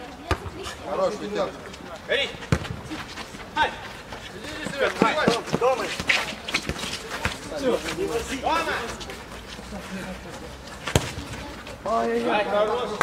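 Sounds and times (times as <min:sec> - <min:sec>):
football being kicked thud: 0:02.5 - 0:02.8, 0:10.9 - 0:11.2.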